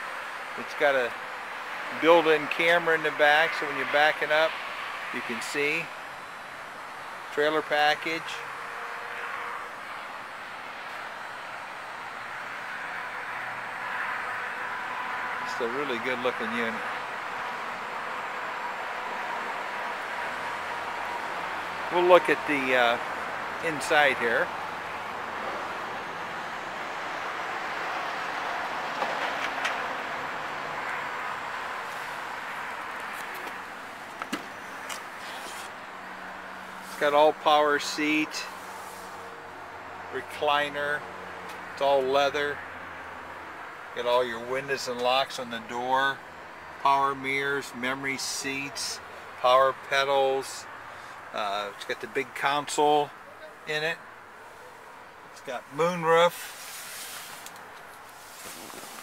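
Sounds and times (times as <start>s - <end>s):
steady hiss: 55.5s - 59.0s.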